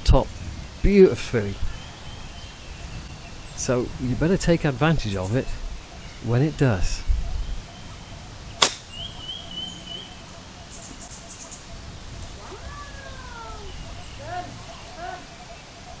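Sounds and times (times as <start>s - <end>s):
golf club striking ball: 8.6s - 9.0s.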